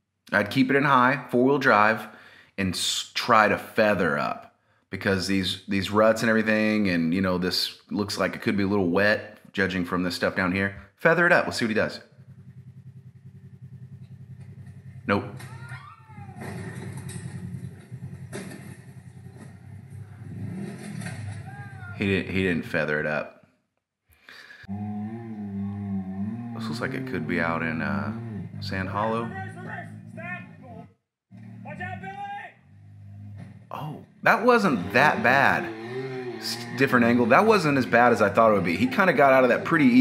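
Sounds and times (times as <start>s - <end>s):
utility vehicle engine running: 11.6s - 22.1s, 26.4s - 40.0s.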